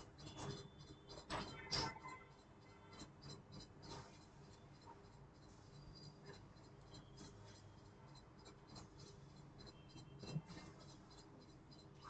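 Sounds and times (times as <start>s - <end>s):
pens scratching on paper: 0.0s - 12.0s.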